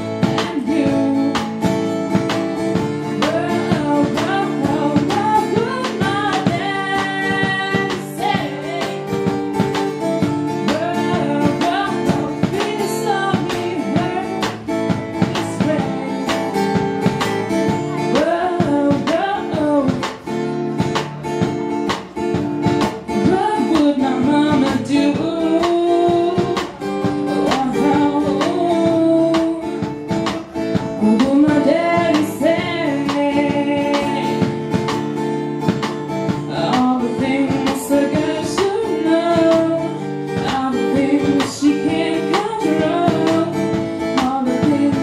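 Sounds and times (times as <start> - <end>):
person singing: 0.0 - 1.7, 3.0 - 9.4, 10.6 - 16.8, 17.8 - 20.2, 23.2 - 34.9, 36.3 - 45.0
acoustic guitar strumming: 0.0 - 45.0.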